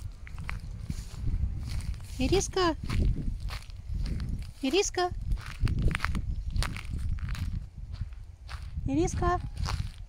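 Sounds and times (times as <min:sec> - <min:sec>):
footsteps on gravel and grass: 0:00.0 - 0:10.0
low rumble: 0:00.0 - 0:10.0.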